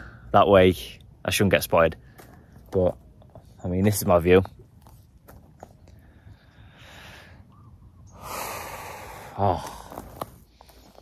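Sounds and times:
man exhaling: 8.1 - 10.1.

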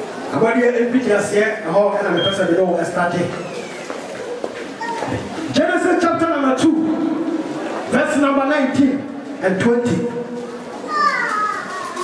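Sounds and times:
young child calling: 4.8 - 5.3, 10.9 - 12.0.

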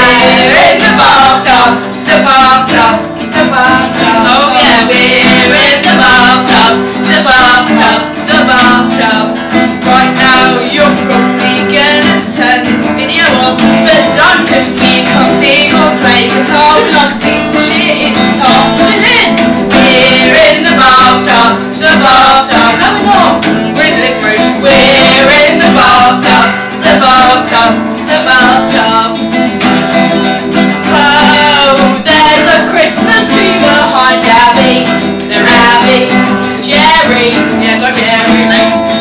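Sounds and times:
electric guitar strumming chords: 0.0 - 39.0
nylon-string acoustic guitar: 0.0 - 39.0.

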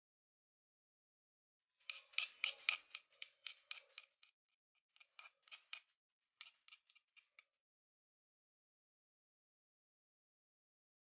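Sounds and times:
metal spoon scraping stone mortar: 1.9 - 4.1.

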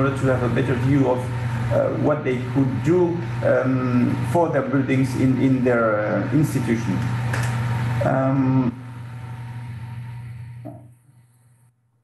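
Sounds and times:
microphone line hum and hiss: 0.0 - 11.7
person saying uh: 8.0 - 8.8.

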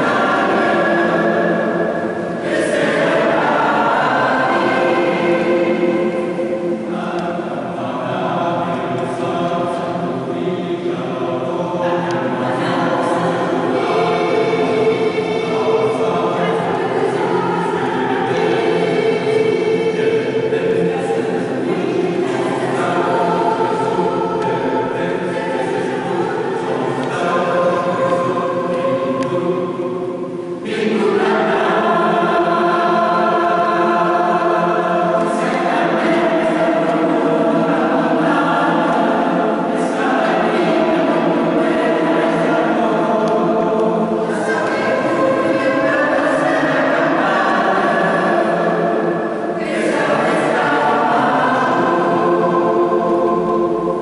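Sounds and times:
mixed choir singing: 0.0 - 54.0.

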